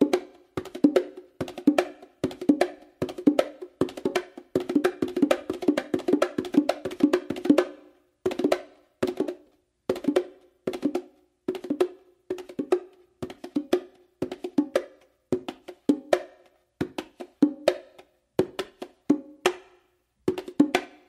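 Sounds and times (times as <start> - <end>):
bongos played with hands: 0.0 - 21.0.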